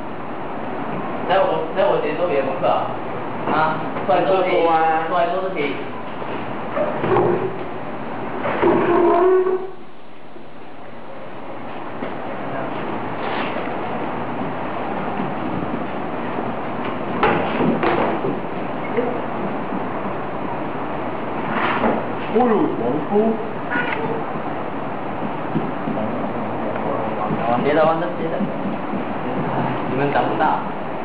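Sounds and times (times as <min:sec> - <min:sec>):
person holding a drawn-out note: 0:08.6 - 0:09.8.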